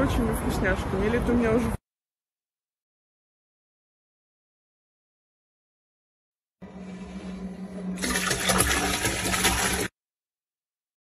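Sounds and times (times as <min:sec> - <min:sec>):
liquid pouring into toilet: 0:07.9 - 0:10.0.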